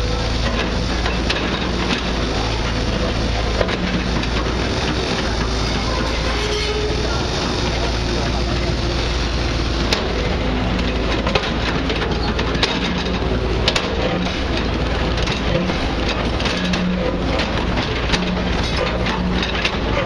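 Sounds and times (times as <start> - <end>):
crane engine running: 0.0 - 20.0
indistinct chatter of voices: 0.0 - 20.0.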